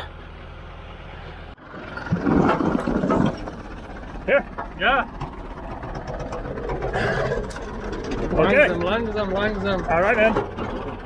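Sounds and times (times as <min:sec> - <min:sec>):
tractor engine running: 0:00.0 - 0:11.0.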